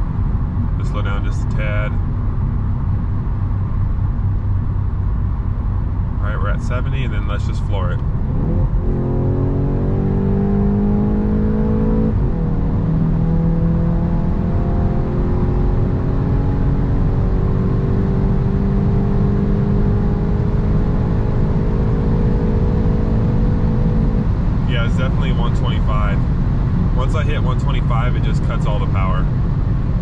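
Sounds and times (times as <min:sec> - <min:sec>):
car engine at full throttle: 0:00.0 - 0:30.0
road and tyre noise: 0:00.0 - 0:30.0.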